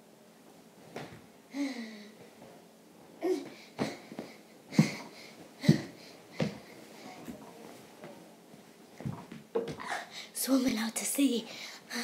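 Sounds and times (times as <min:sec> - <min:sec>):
girl breathing hard: 0:01.5 - 0:02.2, 0:03.2 - 0:07.2, 0:09.7 - 0:10.4, 0:11.5 - 0:12.0.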